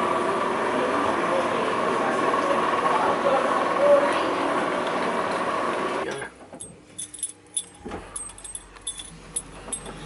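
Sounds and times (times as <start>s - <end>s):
busy street noise: 0.0s - 6.1s
light metallic clinks and jingles: 6.6s - 10.0s.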